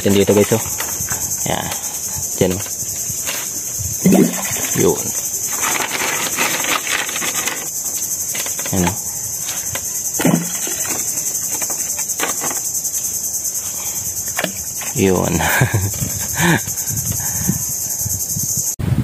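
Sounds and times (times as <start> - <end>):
high-pitched insect chorus: 0.0 - 19.0.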